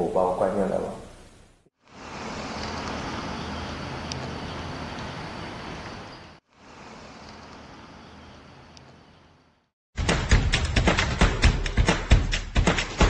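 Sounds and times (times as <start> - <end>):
roadway traffic hum: 1.8 - 9.7.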